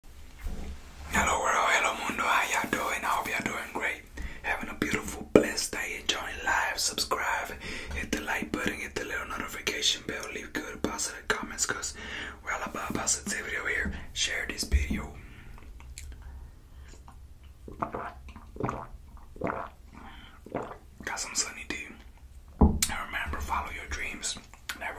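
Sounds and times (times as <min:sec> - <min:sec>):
man whispering: 0:01.1 - 0:15.6, 0:21.0 - 0:22.1, 0:22.8 - 0:24.9.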